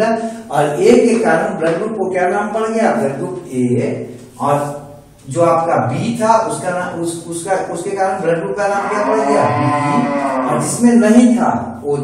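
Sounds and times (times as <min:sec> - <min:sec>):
long drawn-out voiced call: 0:08.7 - 0:10.7.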